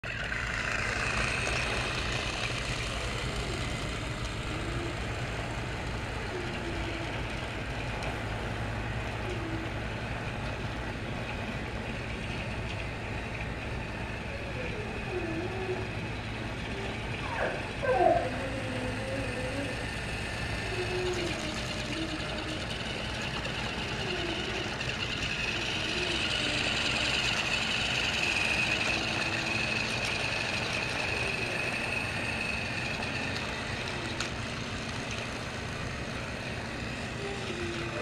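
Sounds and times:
toy train motor humming: 0.0s - 38.0s.

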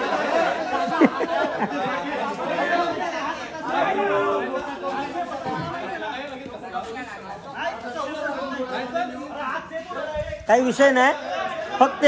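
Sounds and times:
men chattering: 0.0s - 12.0s.

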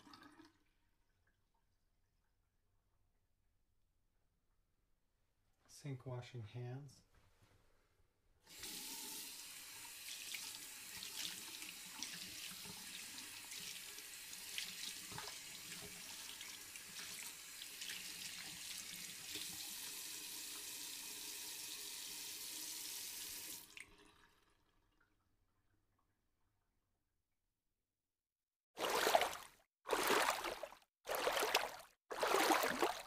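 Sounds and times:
tap water running into sink: 8.5s - 24.6s.

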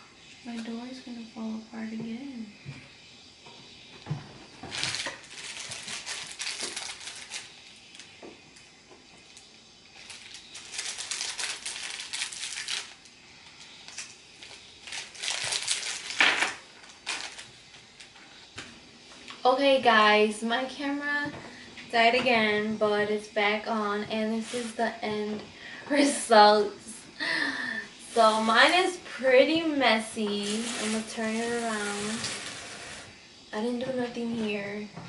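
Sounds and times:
plastic packaging crinkling: 4.6s - 8.2s, 10.0s - 18.2s, 24.2s - 25.0s, 30.2s - 33.0s.

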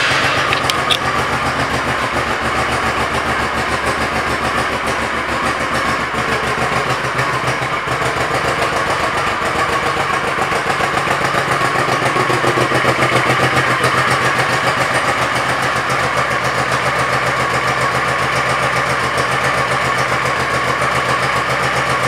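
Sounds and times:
motorcycle engine idling: 0.0s - 22.0s.

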